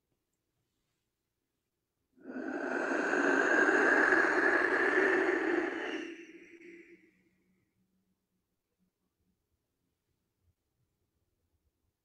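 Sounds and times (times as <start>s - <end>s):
clay whistle breathy rushing: 2.2s - 7.0s.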